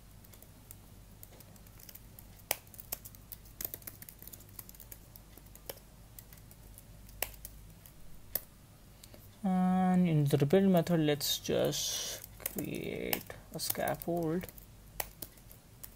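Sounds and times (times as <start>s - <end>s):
low steady hum: 0.0s - 15.9s
computer keyboard typing: 0.1s - 8.5s, 11.6s - 15.9s.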